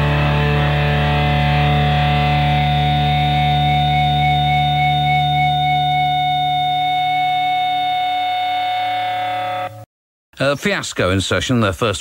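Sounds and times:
distorted electric guitar chord: 0.0s - 9.8s.

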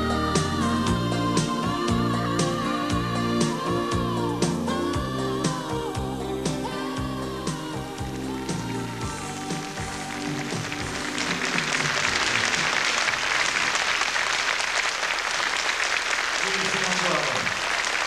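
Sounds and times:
pop ballad music: 0.0s - 12.8s
audience applauding: 9.0s - 18.0s.

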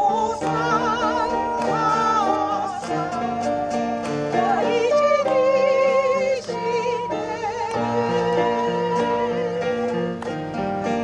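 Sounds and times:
person singing with vibrato: 0.0s - 11.0s
strummed acoustic guitar: 0.0s - 11.0s.

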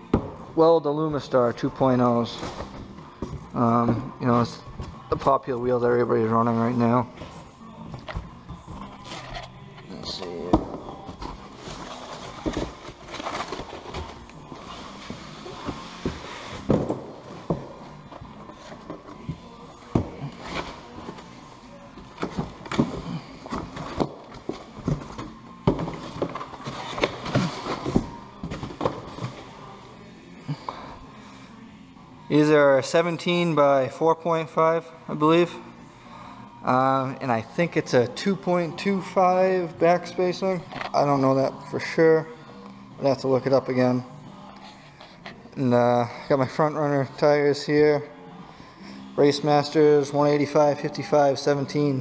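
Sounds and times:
cardboard and foam rustling: 10.5s - 21.4s.

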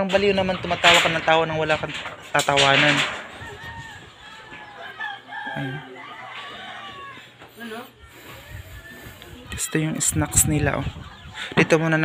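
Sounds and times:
chickens calling: 0.0s - 12.0s
rooster crowing: 3.1s - 9.5s.

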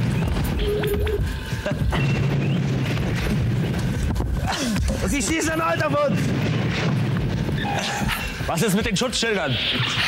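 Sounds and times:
steady low hum: 0.0s - 10.0s
explosion boom and rumble: 1.3s - 9.0s.

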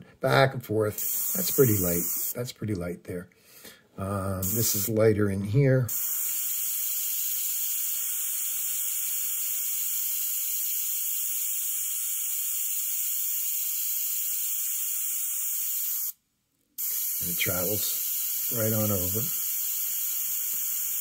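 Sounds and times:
airbrush hissing: 1.0s - 2.4s, 4.4s - 5.0s, 5.9s - 16.2s, 16.8s - 21.0s.

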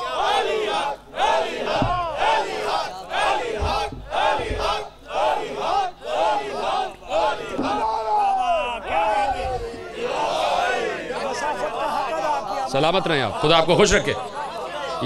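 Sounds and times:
crowd of men chanting: 0.0s - 15.0s
man shouting slogans: 7.7s - 9.5s.

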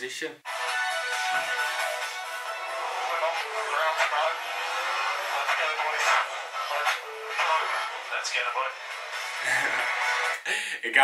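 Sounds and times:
background music: 0.4s - 10.7s.

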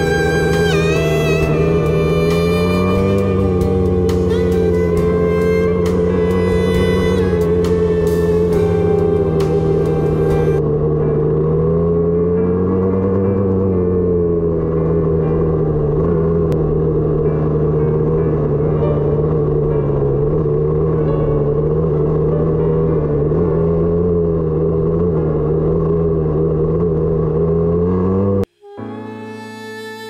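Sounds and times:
dirt bike engine running: 0.0s - 28.5s.

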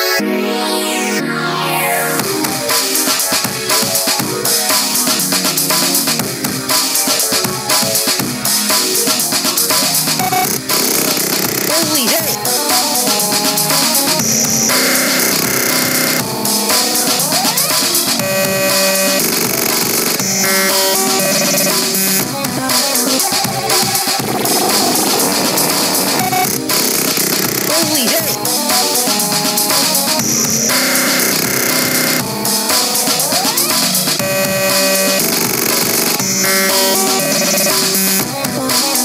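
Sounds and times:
electronic music with synthesizer chords: 0.0s - 39.0s.

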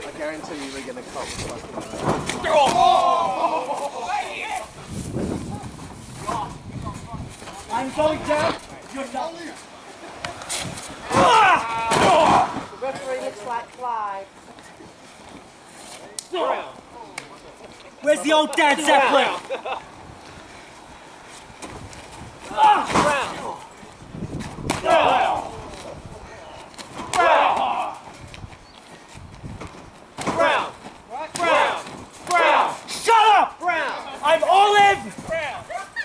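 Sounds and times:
wordless yells: 2.4s - 4.6s, 11.1s - 12.6s, 22.5s - 23.6s, 24.8s - 25.5s, 27.1s - 28.0s, 31.4s - 35.1s
person shouting: 11.1s - 12.5s, 22.5s - 23.6s, 24.8s - 25.5s, 27.1s - 28.0s, 31.4s - 33.8s.

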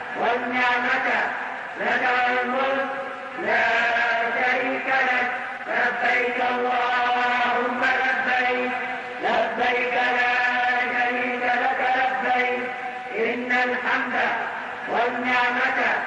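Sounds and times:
man chanting: 0.0s - 16.0s.

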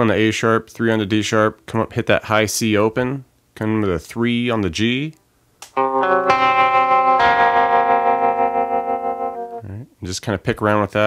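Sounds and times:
guitar notes picked: 5.7s - 9.6s.

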